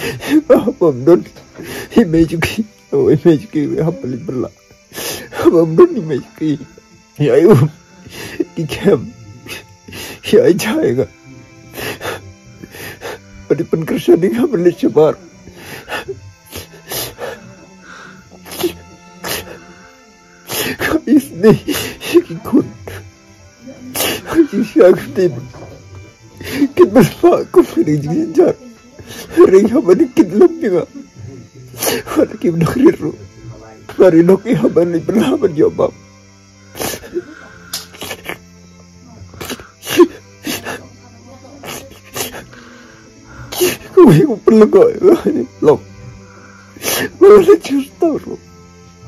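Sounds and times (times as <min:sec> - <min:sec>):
man sobbing and sniffing: 0:00.0 - 0:00.8, 0:01.4 - 0:02.2, 0:04.8 - 0:10.6, 0:11.6 - 0:13.8, 0:15.4 - 0:23.2, 0:23.9 - 0:25.3, 0:26.3 - 0:33.1, 0:36.6 - 0:38.6, 0:39.3 - 0:40.9, 0:41.6 - 0:48.3
background music: 0:00.0 - 0:49.0.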